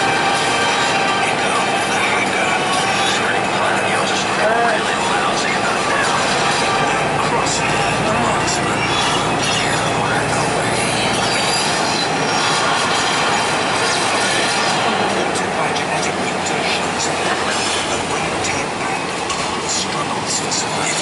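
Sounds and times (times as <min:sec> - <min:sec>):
coach engine and road rumble: 0:00.0 - 0:21.0.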